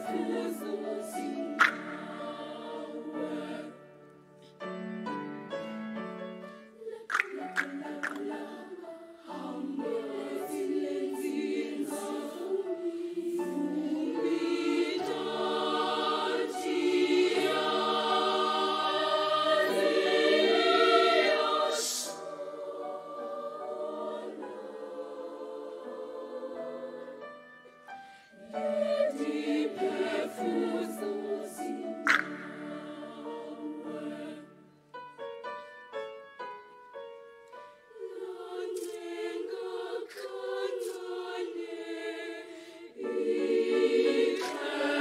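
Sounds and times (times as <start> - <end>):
children's choir singing: 0.0 - 4.1, 6.7 - 27.5, 28.3 - 34.9, 37.9 - 45.0.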